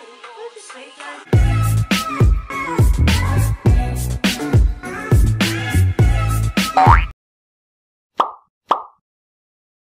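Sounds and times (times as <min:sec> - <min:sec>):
pop sound effects: 0:06.8 - 0:07.1, 0:08.2 - 0:09.0.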